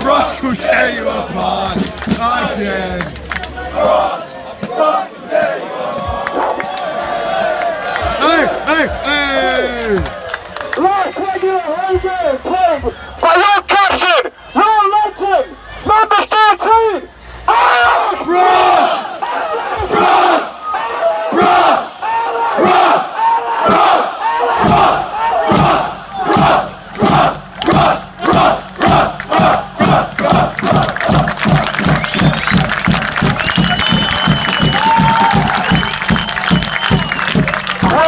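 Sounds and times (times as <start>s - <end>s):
crowd chanting: 0.0s - 2.9s, 3.6s - 9.0s, 17.4s - 38.0s
crowd shouting in unison: 3.6s - 8.8s, 17.5s - 32.3s, 33.5s - 36.6s.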